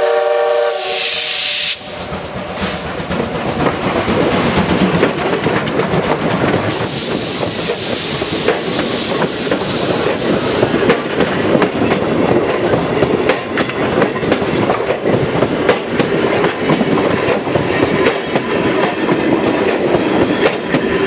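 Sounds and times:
train rolling past: 0.0 - 21.0
wheels clacking over rail joints: 2.0 - 21.0.

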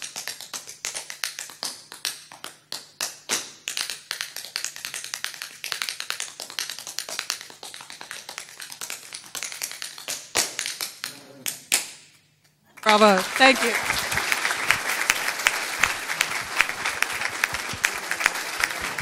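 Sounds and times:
tap shoes on floor: 16.3 - 18.0.

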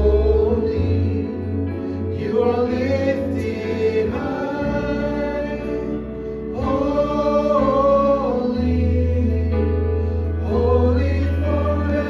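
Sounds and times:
voices singing together: 0.0 - 12.0
worship band playing: 0.0 - 12.0.

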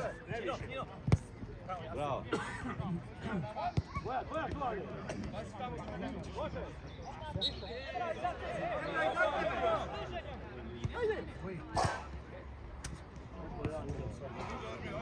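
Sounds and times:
players calling and shouting: 0.0 - 15.0.

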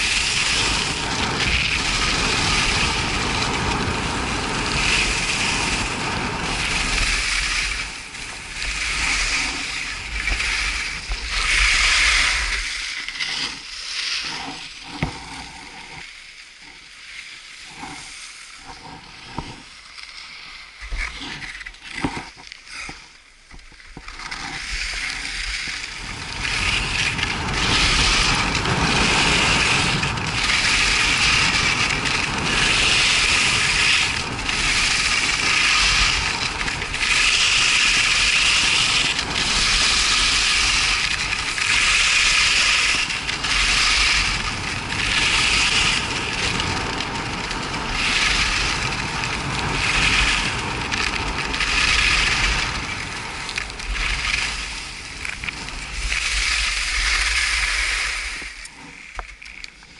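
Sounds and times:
skis scraping packed snow: 0.0 - 59.9
wind rumbling on microphone: 0.0 - 59.9.

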